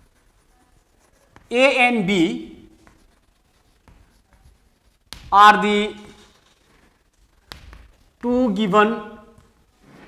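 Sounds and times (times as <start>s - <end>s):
faint writing strokes: 0.0s - 10.0s.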